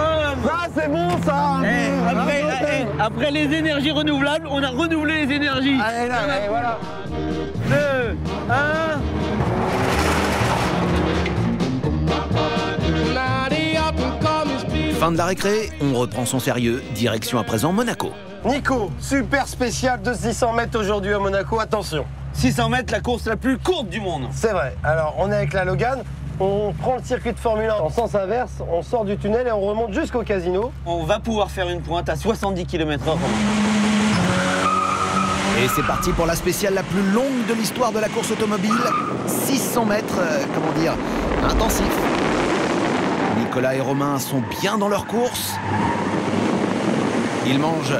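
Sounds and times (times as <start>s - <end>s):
upbeat music with steady beat: 6.0s - 9.5s, 10.9s - 19.0s
car engine accelerating: 6.0s - 13.3s, 32.9s - 44.2s, 45.0s - 47.9s
tyre squeal: 34.1s - 36.3s, 38.1s - 39.3s
rush of noise: 39.2s - 44.2s.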